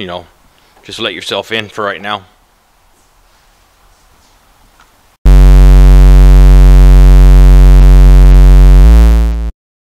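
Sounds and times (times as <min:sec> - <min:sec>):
synthesized buzzing drone: 0:05.3 - 0:09.6.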